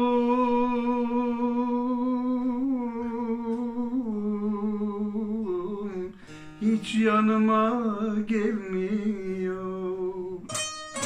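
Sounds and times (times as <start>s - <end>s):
elderly man singing a long note: 0.0s - 10.8s
plucked long-necked lute: 8.4s - 11.0s.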